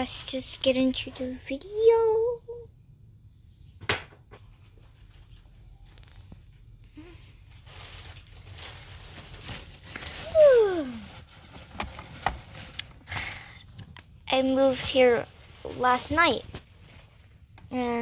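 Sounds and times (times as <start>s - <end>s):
plastic toys handled: 7.5s - 18.0s.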